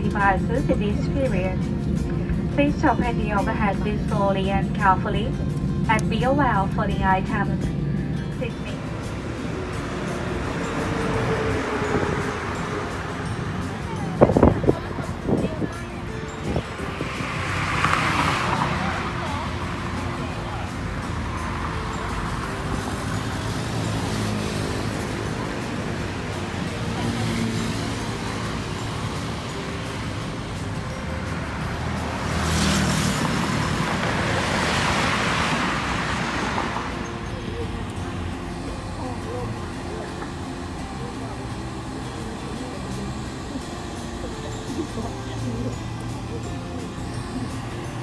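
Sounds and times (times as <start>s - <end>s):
background traffic hum: 0.0s - 48.0s
people's voices in background: 0.0s - 48.0s
vehicle passing by: 7.4s - 48.0s.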